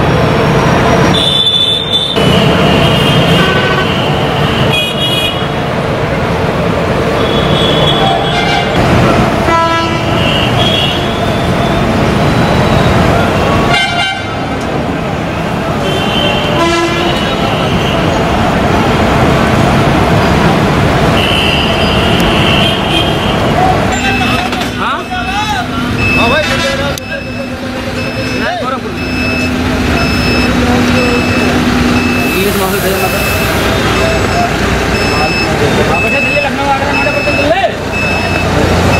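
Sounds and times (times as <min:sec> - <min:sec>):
bus engines running: 0:00.0 - 0:38.9
short beep: 0:26.0 - 0:38.5.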